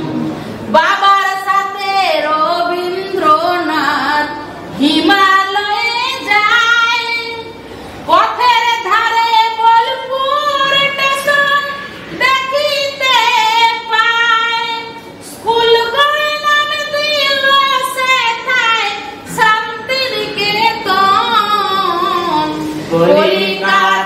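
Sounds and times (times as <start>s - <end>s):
woman singing unaccompanied: 0.7s - 24.0s.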